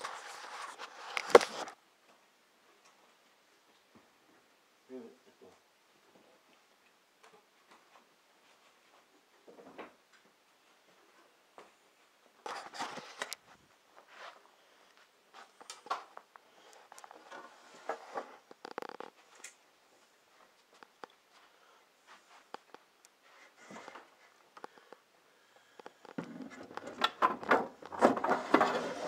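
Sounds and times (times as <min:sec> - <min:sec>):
camera handling noise: 0:01.1 - 0:01.7.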